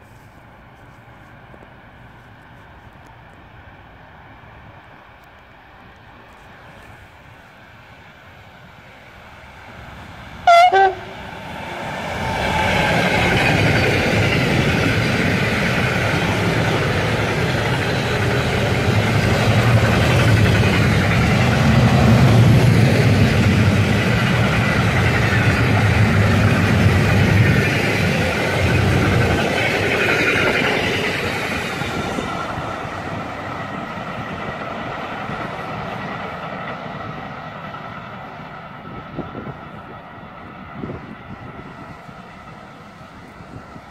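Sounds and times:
freight train passing: 0.0s - 43.9s
train horn blast: 10.4s - 11.2s.

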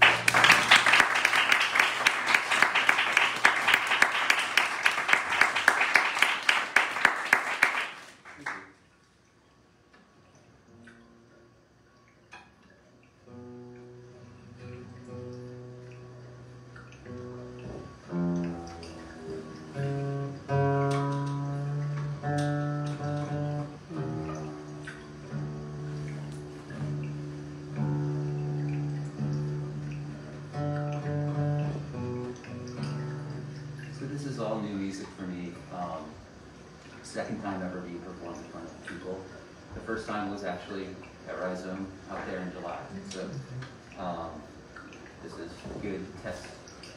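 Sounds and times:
applause: 0.0s - 8.8s
guitar playing slow chords: 13.2s - 34.5s.

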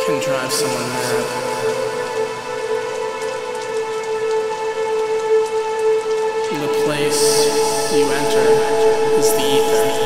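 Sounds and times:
rain falling: 0.0s - 10.0s
steady synth drone: 0.7s - 10.0s.

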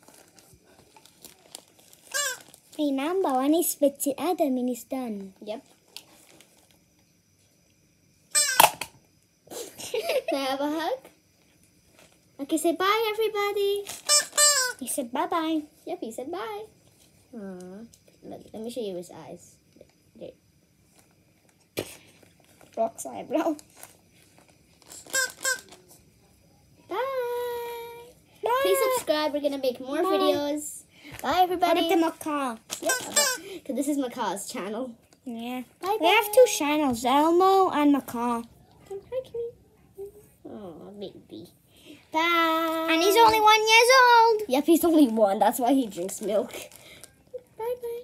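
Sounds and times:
high-pitched squeaks: 8.4s - 8.7s, 14.0s - 14.8s, 24.8s - 25.9s, 32.7s - 33.4s.

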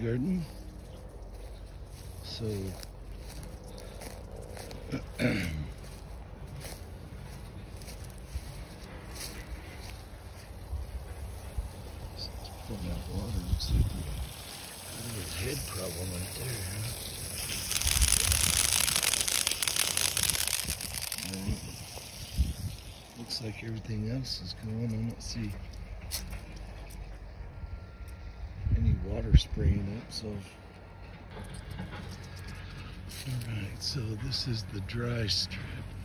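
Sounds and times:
man clearing throat: 4.8s - 5.8s
steady hiss: 7.3s - 24.5s.

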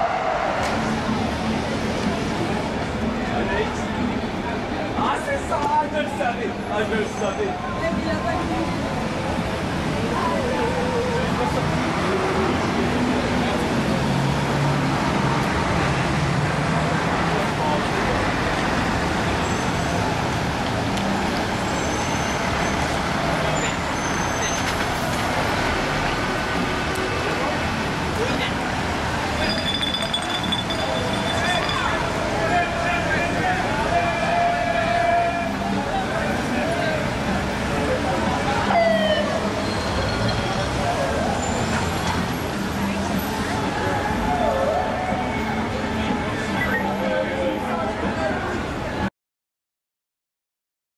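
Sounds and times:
crowd talking: 0.0s - 49.1s
street traffic: 0.0s - 49.1s.

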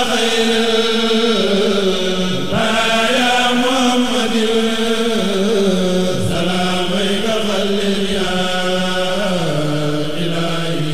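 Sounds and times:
man chanting religious verse: 0.0s - 10.9s.

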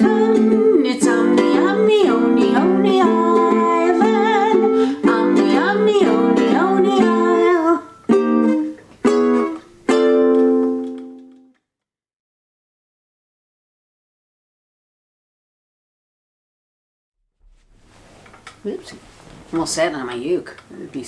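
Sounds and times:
woman singing: 0.0s - 8.0s
strummed ukulele: 0.0s - 11.5s.

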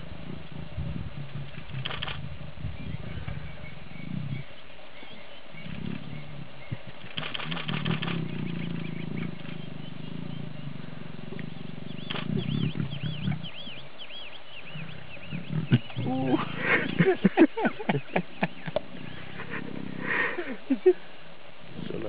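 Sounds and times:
lions growling low: 0.0s - 17.4s, 18.5s - 20.9s
high bird chirps: 11.5s - 16.2s.

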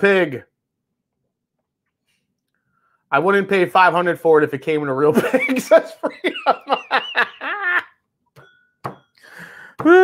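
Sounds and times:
man laughing: 5.1s - 8.0s.

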